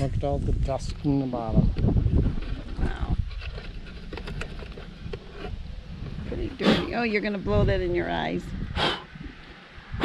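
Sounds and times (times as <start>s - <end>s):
wind rumble on microphone: 0.0s - 10.0s
nest box clicks and scrapes: 2.4s - 5.6s.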